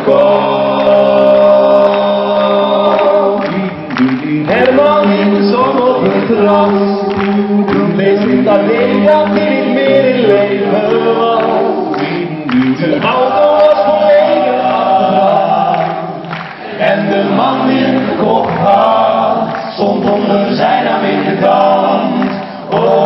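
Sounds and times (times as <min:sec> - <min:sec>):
a cappella group singing: 0:00.0 - 0:23.0.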